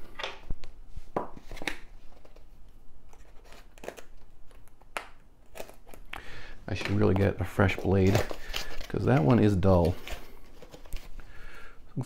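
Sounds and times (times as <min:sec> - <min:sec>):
packaging crinkling: 0:01.4 - 0:11.3
knife cutting packaging: 0:03.1 - 0:11.1.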